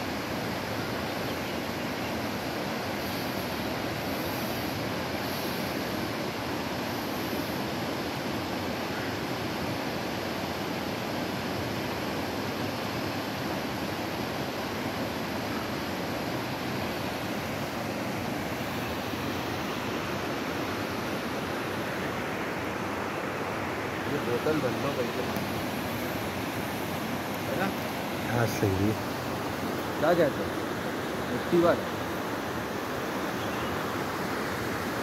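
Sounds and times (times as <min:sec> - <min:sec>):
river rushing over rocks: 0:00.0 - 0:35.0.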